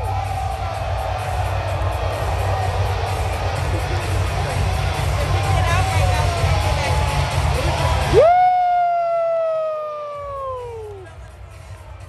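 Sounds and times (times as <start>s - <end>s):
arena music: 0.0s - 12.0s
spectator cheering woo: 8.0s - 11.1s.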